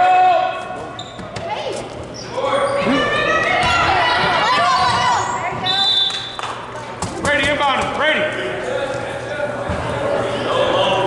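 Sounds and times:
voices echoing in a hall: 0:00.0 - 0:11.0.

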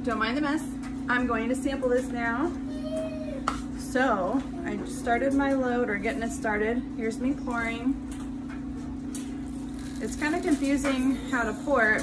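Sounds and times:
steady low hum: 0:03.6 - 0:12.0.

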